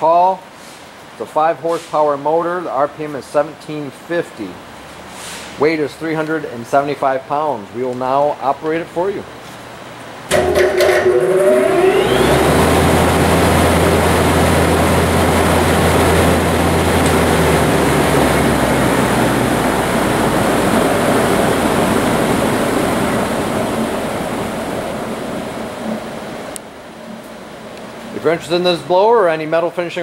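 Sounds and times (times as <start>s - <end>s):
exhaust fan rushing air: 0.0s - 30.0s
low motor hum: 10.3s - 28.4s.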